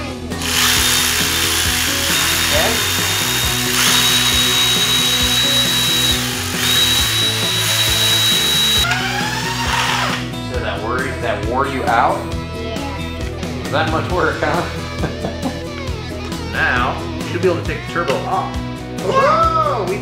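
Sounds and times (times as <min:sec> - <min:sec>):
power ratchet whining: 0:00.3 - 0:10.3.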